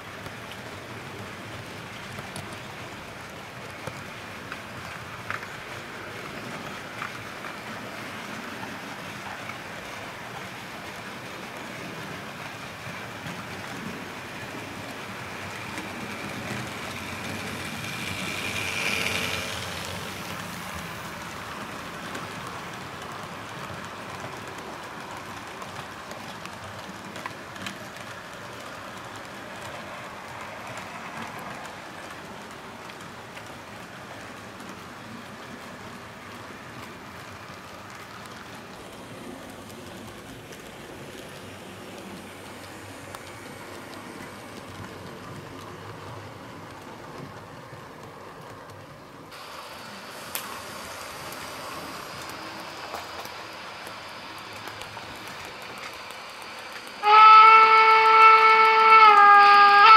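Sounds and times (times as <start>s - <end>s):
model train wheels clattering: 1.5s - 49.2s.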